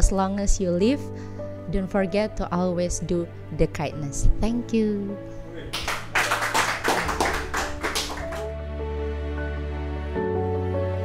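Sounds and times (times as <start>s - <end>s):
soft background music: 0.0s - 11.0s
people clapping: 5.6s - 8.5s.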